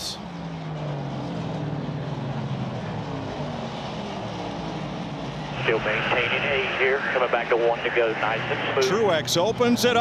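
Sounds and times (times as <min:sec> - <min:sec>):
race car engines at speed: 0:00.0 - 0:10.0.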